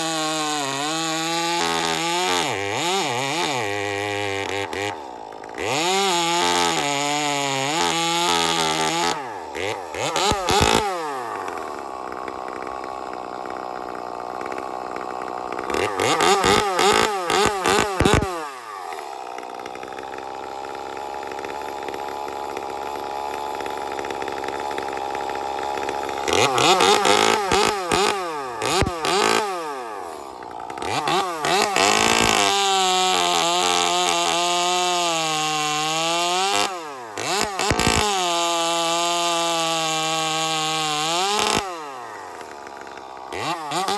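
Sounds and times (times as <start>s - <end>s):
chainsaw cutting log: 0.0s - 43.9s
chainsaw idling and revving: 0.0s - 43.9s.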